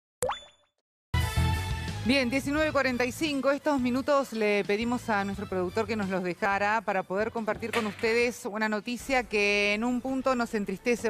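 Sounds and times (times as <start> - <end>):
pop with upward-gliding tone: 0.2 - 0.7
music: 1.2 - 11.0.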